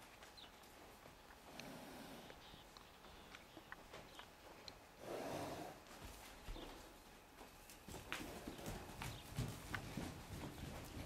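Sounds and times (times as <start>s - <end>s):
hoofbeats on soft dirt: 0.0s - 4.8s, 5.5s - 11.0s.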